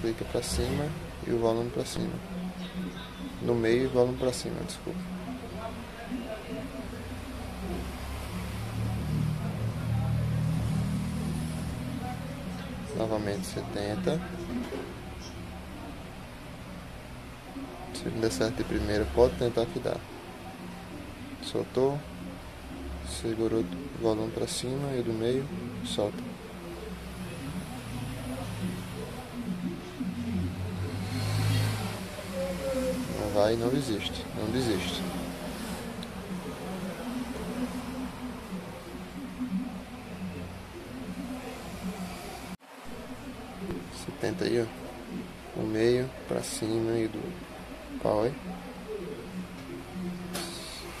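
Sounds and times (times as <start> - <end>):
faint voices: 0.0 - 51.0.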